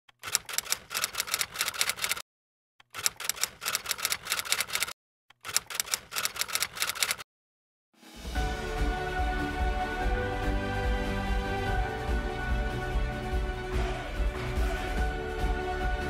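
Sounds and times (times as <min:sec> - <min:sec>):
typewriter key clicks: 0:02.8 - 0:07.2.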